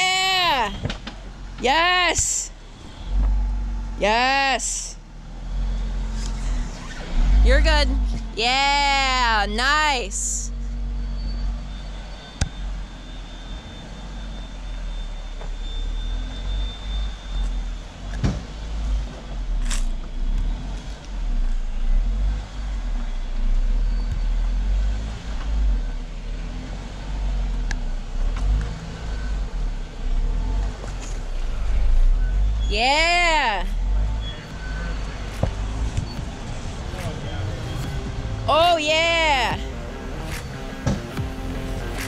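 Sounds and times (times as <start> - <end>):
vehicle engine rumbling at low revs: 0.0 - 42.0.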